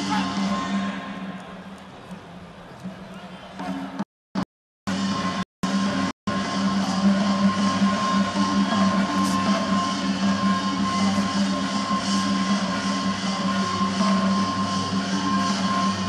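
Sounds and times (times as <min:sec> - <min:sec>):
arena crowd noise: 0:00.0 - 0:04.0, 0:06.5 - 0:16.0.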